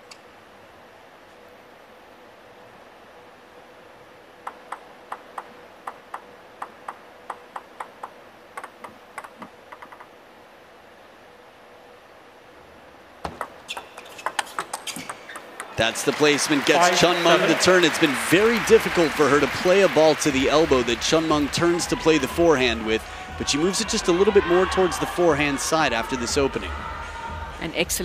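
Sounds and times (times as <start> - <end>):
table tennis ball bouncing: 4.4 - 10.1, 13.2 - 15.8
table tennis rally: 13.2 - 27.2.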